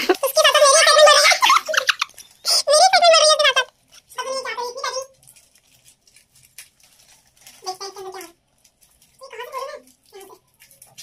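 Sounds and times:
paper and foil wrapping crinkling: 0.0s - 11.0s.

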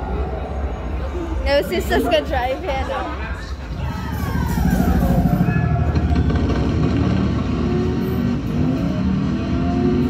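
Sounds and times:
game car engine sound effects: 4.4s - 10.0s.

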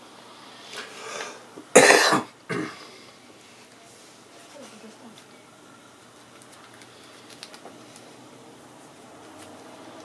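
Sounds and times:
man coughing: 1.7s - 2.8s.

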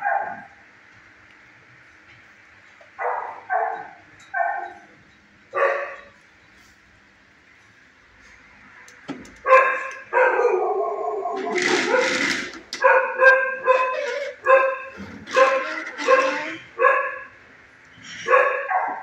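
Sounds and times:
dog barking: 0.0s - 0.5s, 3.0s - 4.8s, 5.5s - 6.1s, 9.4s - 11.0s, 12.8s - 14.9s, 16.8s - 17.3s, 18.2s - 19.0s.

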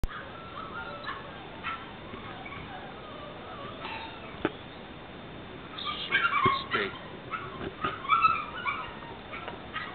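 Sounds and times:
puppy yipping: 0.0s - 4.4s, 5.8s - 9.9s
puppy whining: 0.1s - 4.5s, 5.8s - 9.9s.

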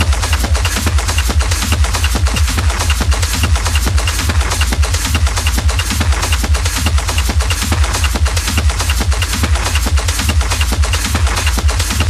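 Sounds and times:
techno music with deep bass: 0.0s - 12.0s.

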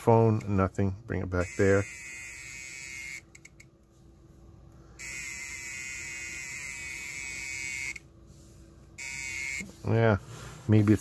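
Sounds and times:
detector alarm buzzing whine: 1.2s - 3.7s, 4.8s - 8.2s, 8.9s - 10.1s.

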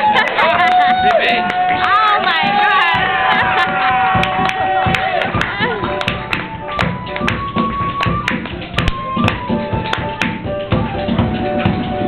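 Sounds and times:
piano playing: 1.5s - 12.0s
flute holding long notes: 5.7s - 12.0s.

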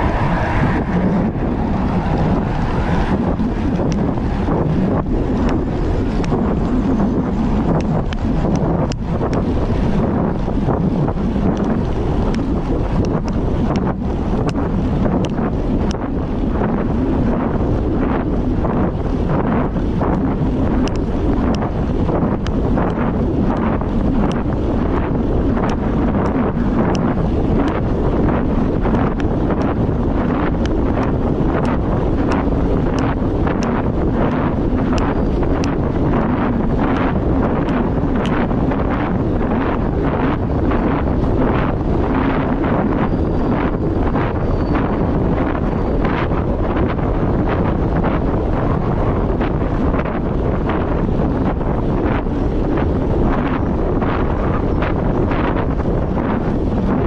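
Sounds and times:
road noise: 0.0s - 57.0s
wind roaring over microphone: 0.0s - 57.0s
faint ticks: 20.8s - 21.7s.

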